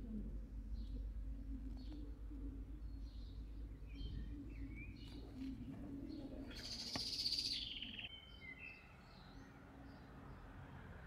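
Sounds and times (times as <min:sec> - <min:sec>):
faint low hum: 0:00.0 - 0:11.0
small birds chirping: 0:00.0 - 0:11.0.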